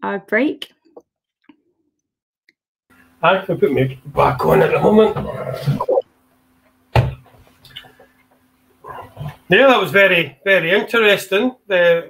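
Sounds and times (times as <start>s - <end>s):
faint scattered noises: 2.9s - 11.0s
voices over video call: 3.2s - 6.0s, 8.9s - 12.0s.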